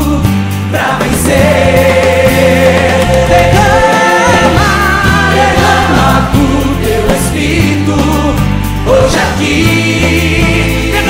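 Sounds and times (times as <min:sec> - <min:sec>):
band with bass and guitars: 0:00.0 - 0:11.0.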